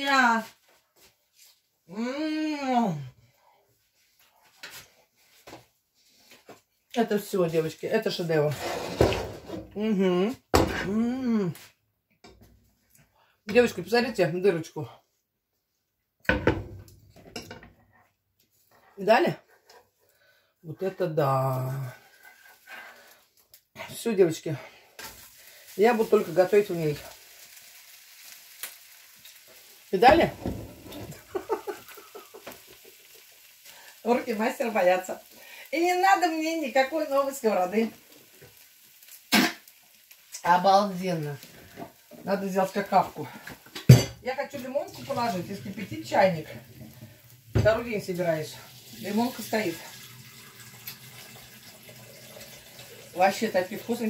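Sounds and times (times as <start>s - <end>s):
batter sizzling in a pan: 21.3s - 54.0s.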